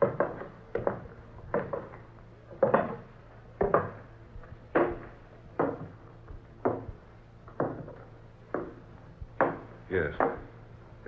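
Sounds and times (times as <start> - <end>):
footsteps on wooden steps: 0.0 - 10.5.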